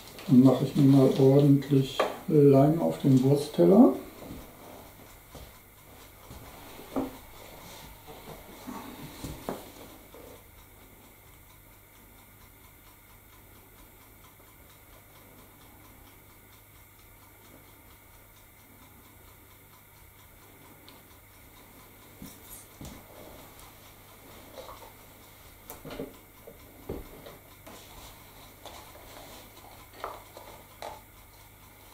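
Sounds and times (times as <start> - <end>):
steady low hum: 0.0 - 31.9.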